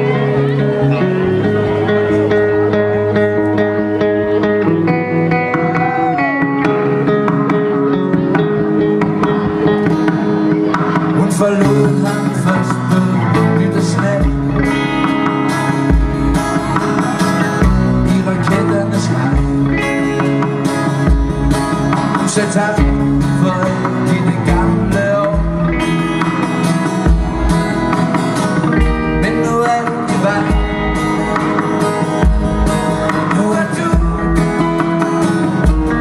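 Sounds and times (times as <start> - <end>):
live folk-pop band playing: 0.0 - 36.0.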